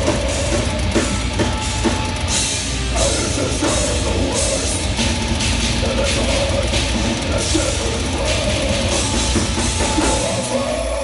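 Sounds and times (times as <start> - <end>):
distorted electric guitar: 0.0 - 11.0
drum kit with cymbal hits: 0.0 - 11.0.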